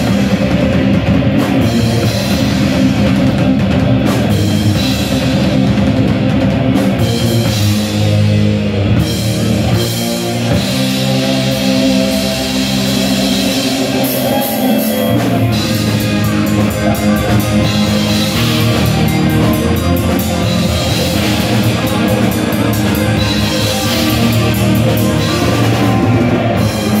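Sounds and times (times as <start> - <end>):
bass guitar: 0.0 - 27.0
drum kit: 0.0 - 27.0
electric guitars: 0.0 - 27.0.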